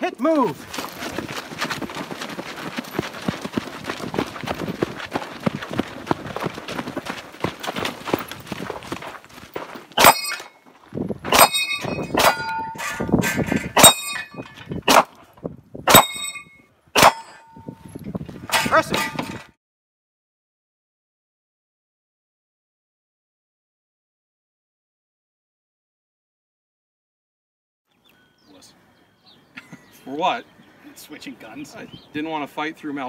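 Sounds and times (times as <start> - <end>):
footsteps on dirt: 0.2 - 16.5, 17.1 - 19.4
steel target clanging: 10.0 - 10.6, 11.3 - 15.1, 15.9 - 17.7, 18.5 - 19.5
gunshots: 17.0 - 17.4.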